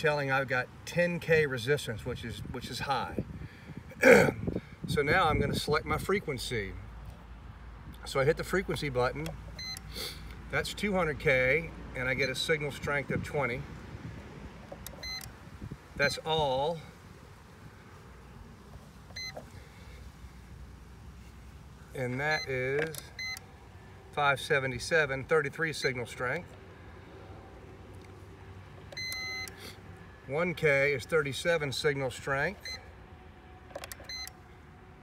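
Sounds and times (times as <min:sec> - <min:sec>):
short electronic beep: 0:29.0 - 0:29.6.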